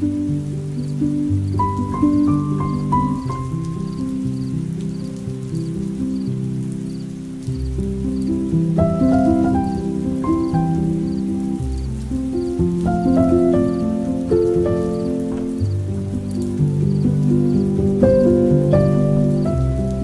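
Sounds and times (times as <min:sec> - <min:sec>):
lofi piano music: 0:00.0 - 0:20.0
rain-like patter: 0:00.0 - 0:20.0.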